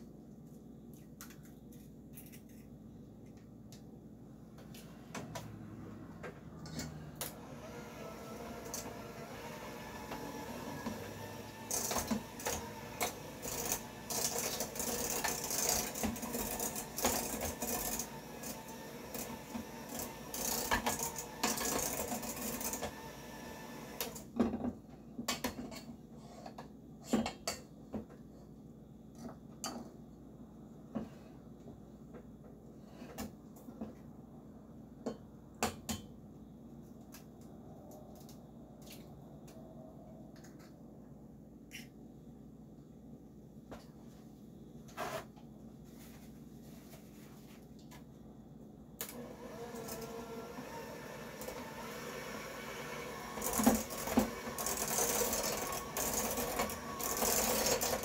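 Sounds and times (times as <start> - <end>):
electric hand mixer running: 7.2 - 24.2, 49.0 - 58.0.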